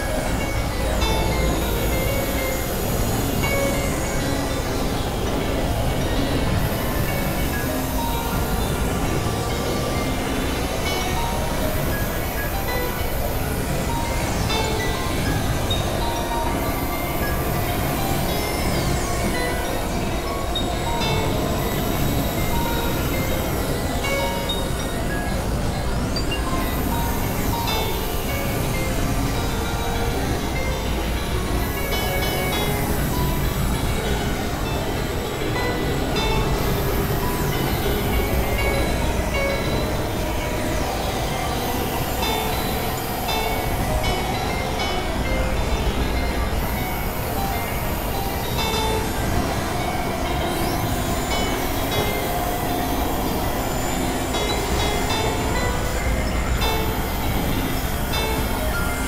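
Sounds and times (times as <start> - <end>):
clusters of high tones: 0.0 - 59.0
synthesizer rumbling drone: 0.0 - 59.0.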